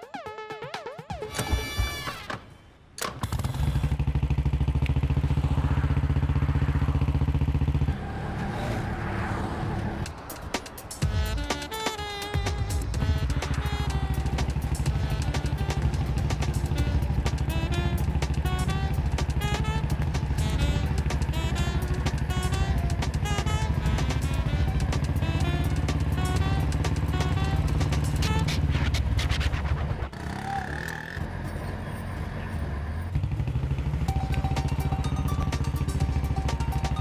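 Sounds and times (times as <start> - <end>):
motorcycle engine revving: 3.2 - 10.2, 11.0 - 37.0
motorcycle engine running: 3.3 - 8.3, 12.3 - 31.7, 33.1 - 37.0
film music melody: 10.1 - 28.8, 34.1 - 37.0.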